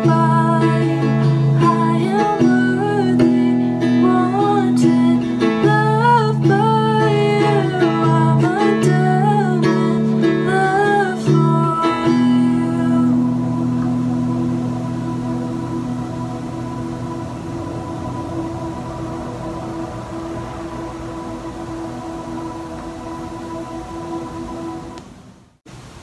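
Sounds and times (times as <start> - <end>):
woman singing: 0.0 - 17.9
strummed acoustic guitar: 0.0 - 19.2.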